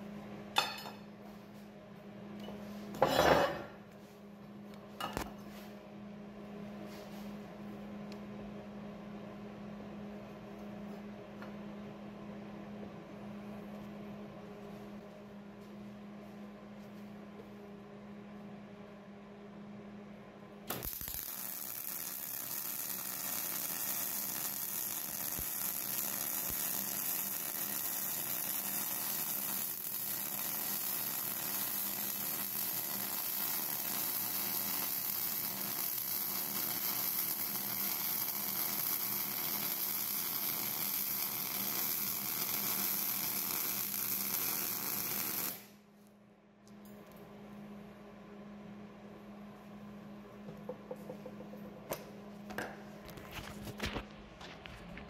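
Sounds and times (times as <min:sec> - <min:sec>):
steady low hum: 0:00.0 - 0:25.8, 0:45.6 - 0:55.0
welding arc crackling: 0:20.7 - 0:45.8.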